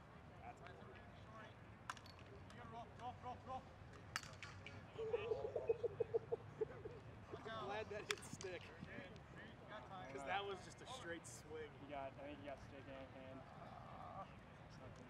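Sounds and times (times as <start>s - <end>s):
players calling out: 4.9s - 8.1s.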